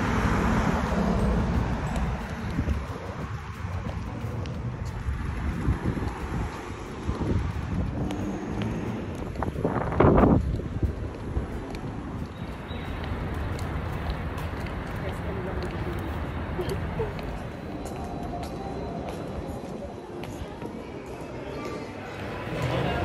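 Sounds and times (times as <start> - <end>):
wind buffeting microphone: 0.0 - 17.7.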